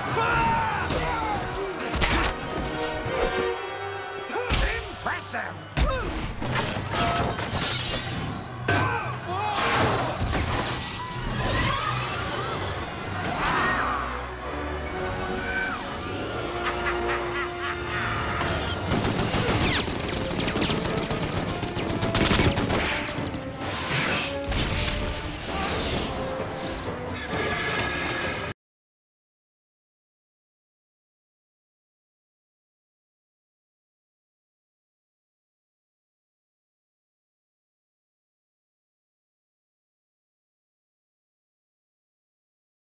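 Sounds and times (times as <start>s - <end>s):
film score music: 0.0s - 28.6s.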